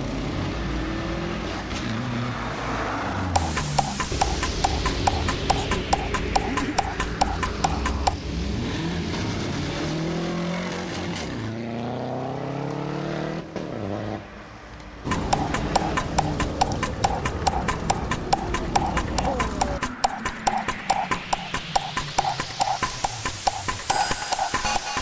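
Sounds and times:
music with fast clicking beat: 3.4s - 8.2s, 15.1s - 25.0s
tyres spinning: 15.1s - 25.0s.

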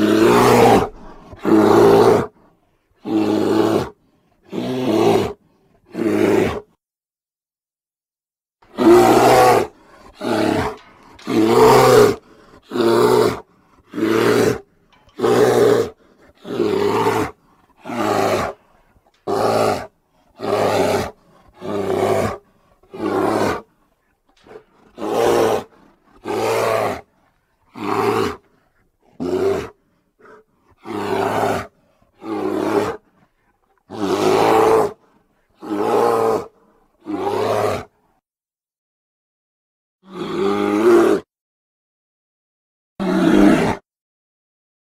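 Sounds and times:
bear roaring: 0.0s - 2.4s, 3.0s - 6.8s, 8.7s - 37.9s, 40.1s - 41.3s, 43.0s - 43.8s.

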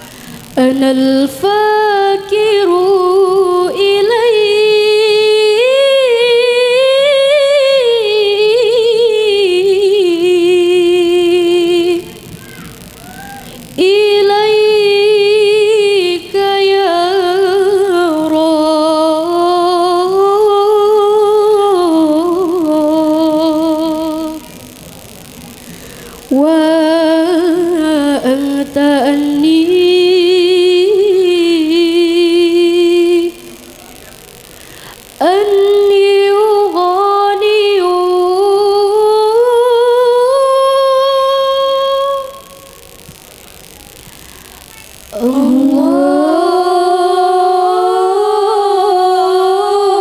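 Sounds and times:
faint room noise: 0.0s - 50.0s
girl singing unaccompanied: 0.6s - 24.5s, 26.3s - 33.6s, 35.2s - 42.8s, 45.1s - 50.0s.

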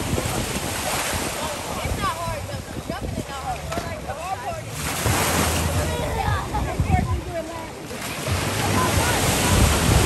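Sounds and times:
people's voices: 0.0s - 10.0s
ocean surf on rocks: 4.1s - 10.0s.

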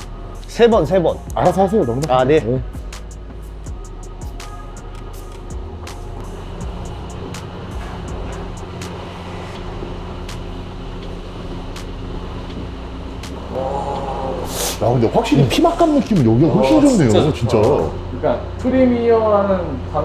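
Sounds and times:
music with low sustained notes: 0.0s - 20.0s.

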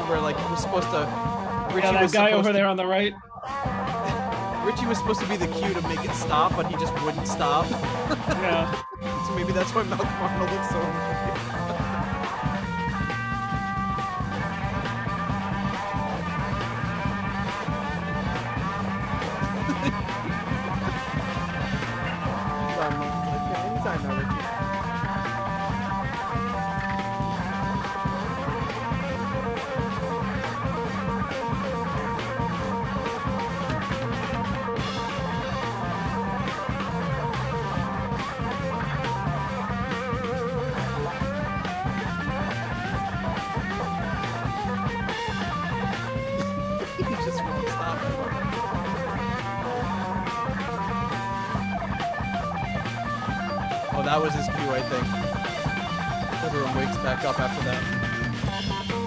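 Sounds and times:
bass groove: 0.0s - 2.7s, 3.4s - 59.0s
drums: 0.0s - 2.7s, 3.4s - 59.0s
electric guitar solo: 3.2s - 59.0s.

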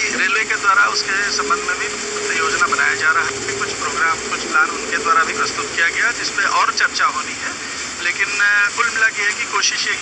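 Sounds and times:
steady hum: 0.0s - 10.0s
voices talking: 0.0s - 10.0s.

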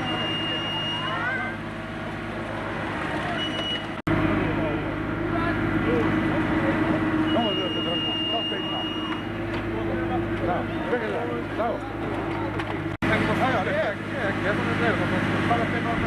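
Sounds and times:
people talking: 0.0s - 1.6s, 4.3s - 16.0s
excavator diesel engine running: 0.0s - 16.0s.

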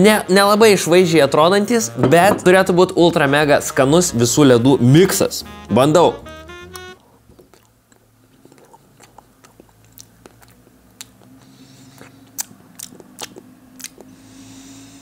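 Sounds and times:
chewing crunchy ice cream cone: 7.0s - 14.2s.

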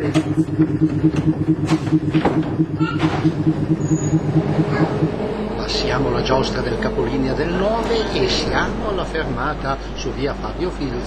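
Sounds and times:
tram running with low hum: 0.0s - 11.0s.

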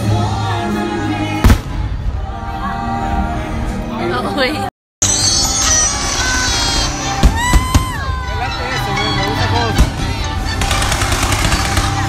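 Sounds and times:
fireworks bursting with bangs: 1.4s - 2.2s, 6.1s - 8.2s, 9.7s - 12.0s
loud music: 5.0s - 12.0s
voices: 5.9s - 12.0s.

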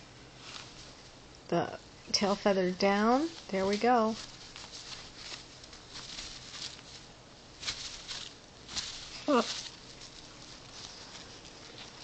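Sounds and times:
feathers rustling on cloth: 0.4s - 1.2s, 3.3s - 12.0s.

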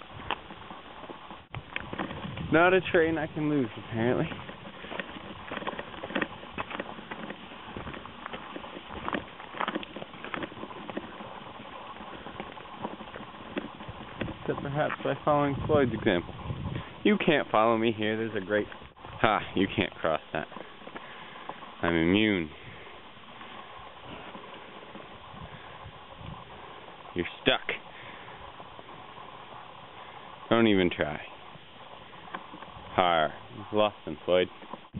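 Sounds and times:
cattle hoof thuds: 0.0s - 15.1s
cow hooves on gravel: 0.0s - 34.9s
footsteps on gravel: 0.0s - 34.9s.

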